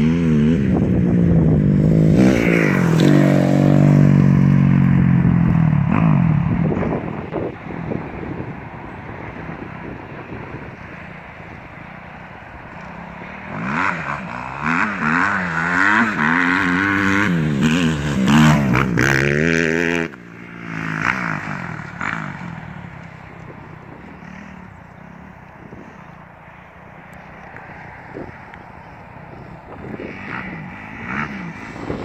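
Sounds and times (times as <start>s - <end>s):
motocross bike revving: 0.0s - 7.5s, 12.8s - 26.1s, 27.7s - 32.0s.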